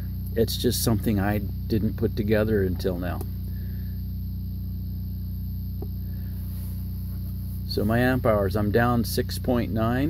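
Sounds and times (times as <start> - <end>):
diesel generator running: 0.0 - 10.0.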